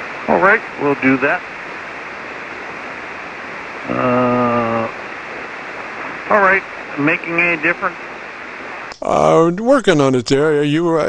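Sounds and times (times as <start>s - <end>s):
radio receiver band noise hiss: 0.0s - 11.0s.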